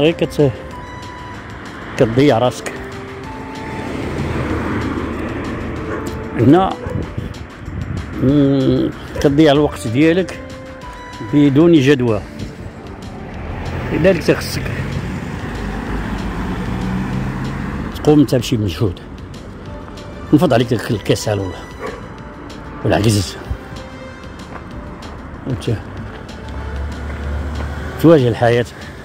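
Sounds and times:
tyre and road noise: 0.0s - 29.0s
car passing close by: 0.6s - 8.2s, 12.2s - 20.1s, 23.5s - 29.0s.

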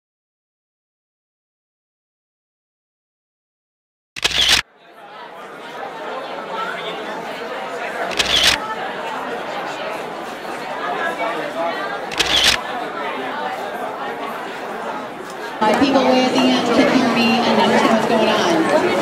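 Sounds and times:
camera shutter clicks: 4.2s - 4.6s, 8.1s - 8.6s, 12.1s - 12.6s
crowd chatter in a hall: 4.6s - 19.0s.

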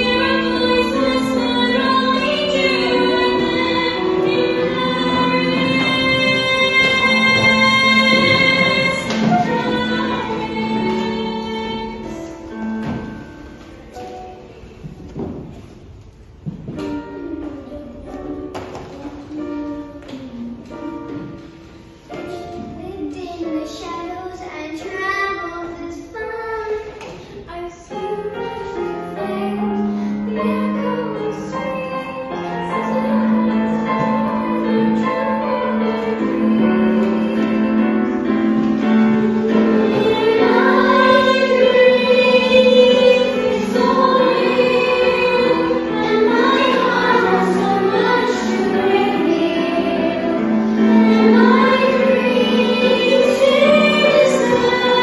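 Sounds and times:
young girl singing: 0.0s - 12.5s, 22.1s - 38.2s, 39.6s - 55.0s
instrumental accompaniment: 0.0s - 23.6s, 27.9s - 55.0s
child singing slow song: 39.2s - 55.0s.

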